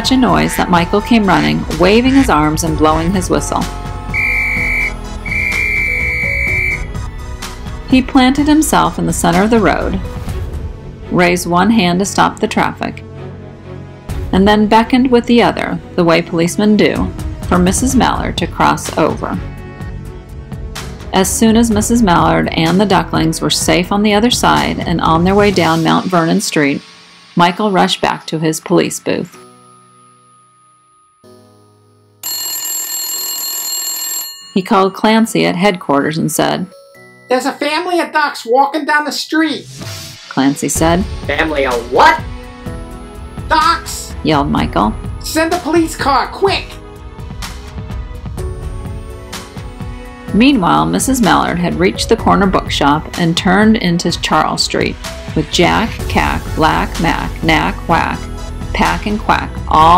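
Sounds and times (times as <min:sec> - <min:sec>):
soft background music: 0:00.0 - 0:32.8, 0:34.2 - 0:59.9
police whistle blasts: 0:04.1 - 0:06.9
telephone bell ringing: 0:04.2 - 0:06.8, 0:32.2 - 0:35.2.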